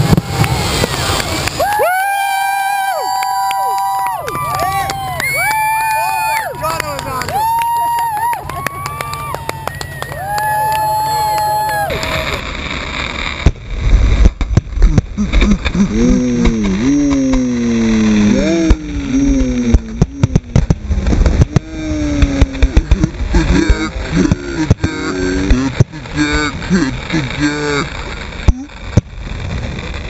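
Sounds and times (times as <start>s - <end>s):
people shouting: 0.0s - 12.4s
fireworks bursting: 0.0s - 30.0s
drawn-out voiced call: 1.6s - 12.4s.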